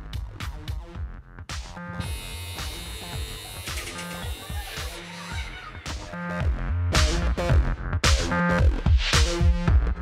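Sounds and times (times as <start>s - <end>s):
background music with beat: 0.0s - 10.0s
electric hair clippers buzzing: 2.0s - 5.3s.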